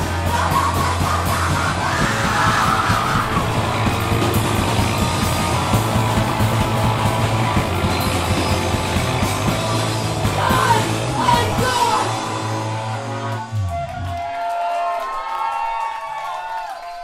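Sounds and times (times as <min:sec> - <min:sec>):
drum kit pounding: 0:00.0 - 0:12.9
yelled vocals: 0:00.0 - 0:13.3
punk rock band playing: 0:00.0 - 0:13.7.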